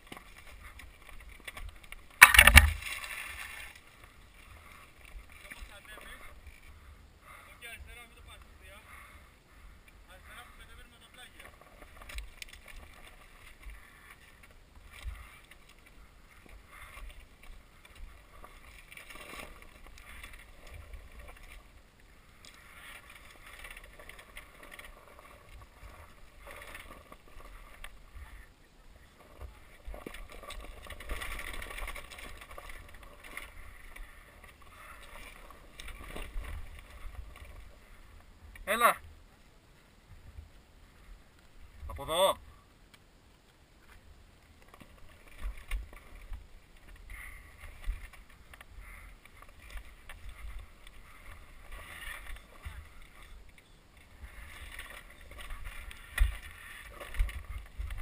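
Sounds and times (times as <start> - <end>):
knocks and rattles over stones: 0.0 - 3.8, 29.2 - 37.8, 49.3 - 58.0.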